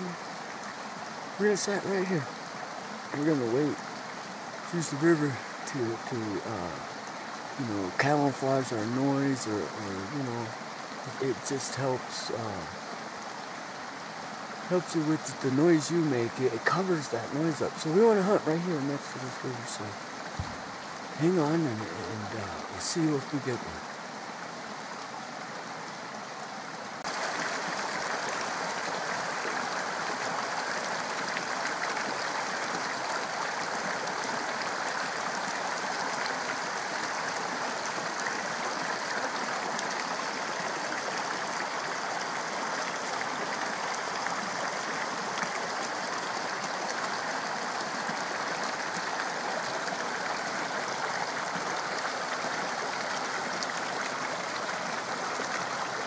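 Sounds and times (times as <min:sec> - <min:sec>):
water trickling from cascade: 0:00.0 - 0:24.2, 0:27.0 - 0:56.0
creek running over rocks: 0:00.0 - 0:56.0.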